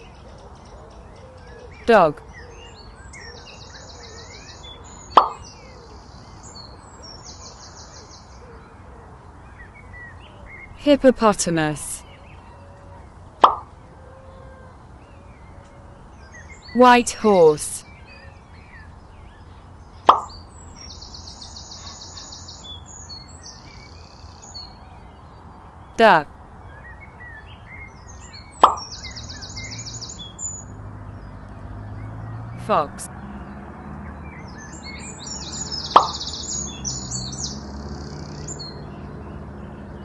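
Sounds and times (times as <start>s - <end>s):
bird chirps: 0.0s - 8.8s, 12.0s - 13.9s, 16.2s - 40.0s
short plop: 13.4s - 13.7s, 20.1s - 20.3s.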